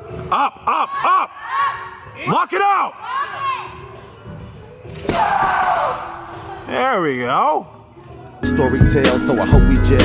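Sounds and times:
background music: 7.0 - 10.0.

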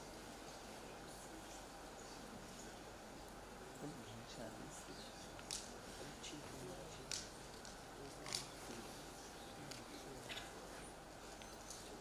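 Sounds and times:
audience clicks and rustles: 0.0 - 12.0
faint steady hiss: 0.0 - 12.0.

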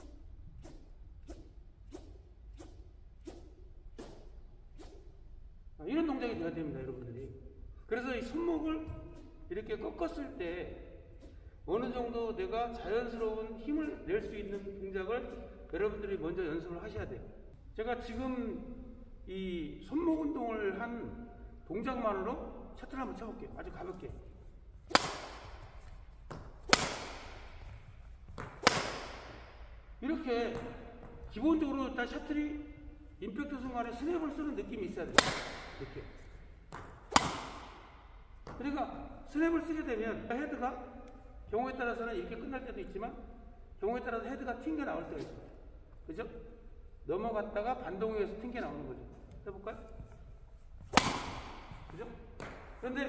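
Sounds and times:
racket swishing through air: 0.0 - 5.3, 11.1 - 11.6, 23.7 - 31.7, 35.0 - 38.6, 49.8 - 52.8.

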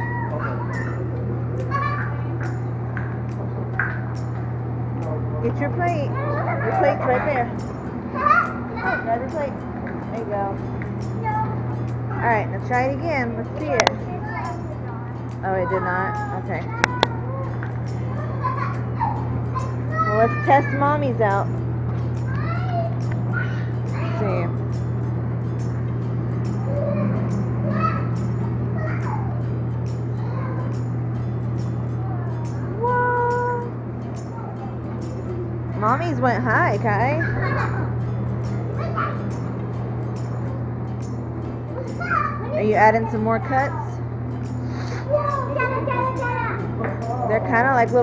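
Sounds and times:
blower fan humming: 0.0 - 48.0
distant children calling out: 0.0 - 48.0.

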